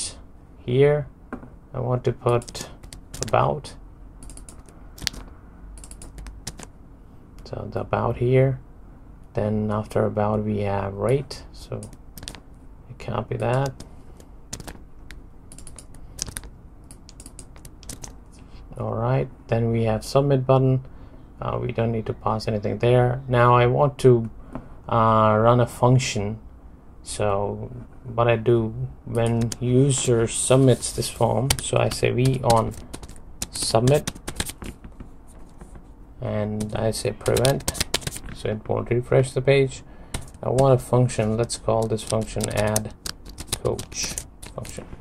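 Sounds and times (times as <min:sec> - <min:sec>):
computer keyboard typing: 0:02.3 - 0:03.5, 0:04.2 - 0:06.7, 0:11.7 - 0:12.4, 0:13.4 - 0:18.2, 0:29.1 - 0:29.6, 0:30.9 - 0:35.6, 0:36.6 - 0:38.4, 0:40.1 - 0:44.8
keyboard key clicks: 0:11.8 - 0:12.4, 0:14.5 - 0:18.1.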